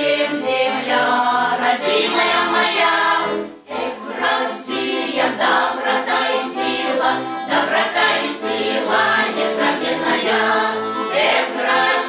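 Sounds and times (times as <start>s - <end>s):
folk vocal ensemble singing: 0.0s - 12.0s.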